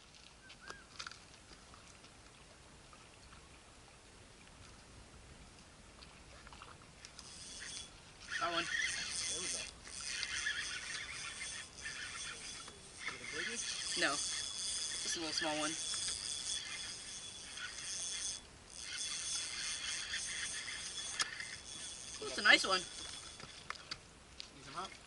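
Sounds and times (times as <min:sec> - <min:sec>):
fishing reel gear whine: 0:07.0 - 0:24.0.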